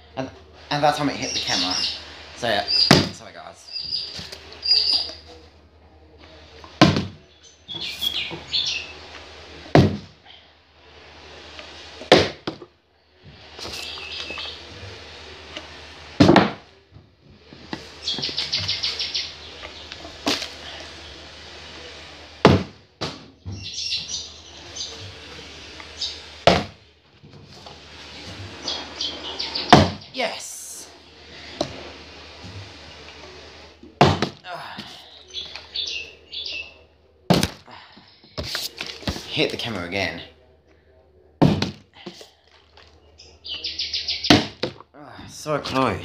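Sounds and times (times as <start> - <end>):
bird chirps: 1.1 - 5.2, 7.4 - 8.9, 18.0 - 19.6, 23.5 - 25.0, 28.6 - 30.2, 35.2 - 36.8, 43.2 - 44.4
water bottle thudding on table: 41.4 - 41.8.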